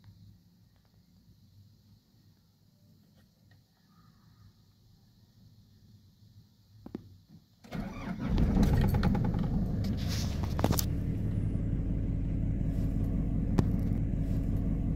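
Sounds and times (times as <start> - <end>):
engine cranking and idling: 7.7 - 14.9.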